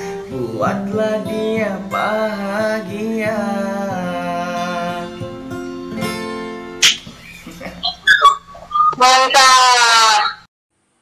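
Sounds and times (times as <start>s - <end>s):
guitar song: 0.0s - 8.7s
scattered voice sounds: 7.8s - 10.5s.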